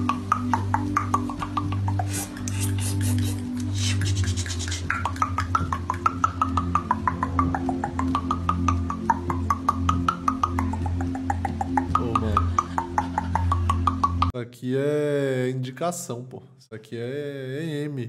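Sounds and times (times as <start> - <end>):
low droning background music: 0.0 - 14.4
woman's rapid stuttering vocal sounds: 0.4 - 9.3.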